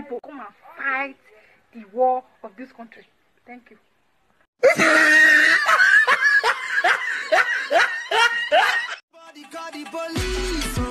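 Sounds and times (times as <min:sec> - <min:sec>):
person laughing: 0:04.6 - 0:09.0.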